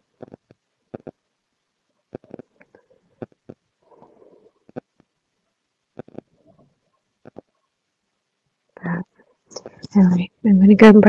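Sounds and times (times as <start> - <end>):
soft rustling: 1.8 - 7.8.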